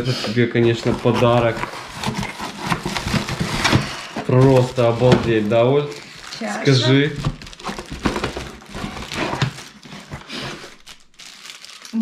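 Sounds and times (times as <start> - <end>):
plastic bags crinkling: 0.3 - 12.0.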